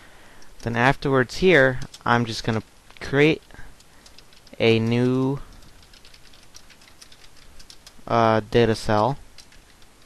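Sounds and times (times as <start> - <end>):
keyboard typing: 1.6 - 2.6, 3.4 - 8.2, 8.8 - 10.0.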